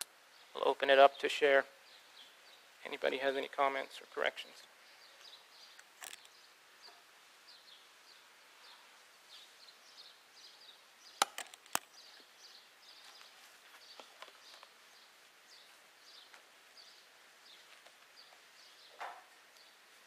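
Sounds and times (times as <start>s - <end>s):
sharp clicks: 11.2s - 11.9s.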